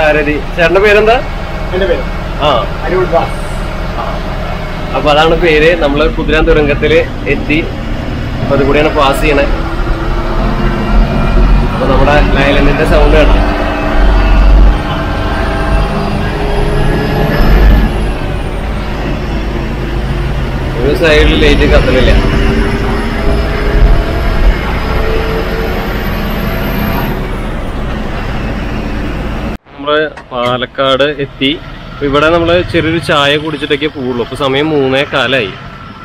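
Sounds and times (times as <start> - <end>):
coach engine rumble: 0.0 - 35.2
road noise in tunnel: 0.0 - 36.0.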